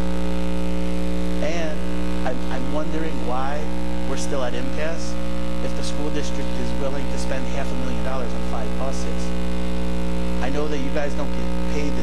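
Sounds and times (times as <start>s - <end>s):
electrical mains hum: 0.0s - 12.0s.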